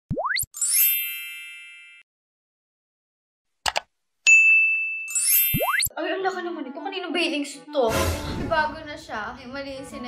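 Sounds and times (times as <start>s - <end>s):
bright sparkling chime: 0.6s - 2.0s, 4.3s - 5.8s.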